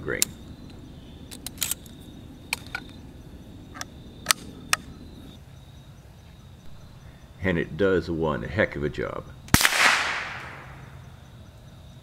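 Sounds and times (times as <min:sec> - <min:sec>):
sharp metallic rifle breech clicks: 0:01.3 - 0:01.9.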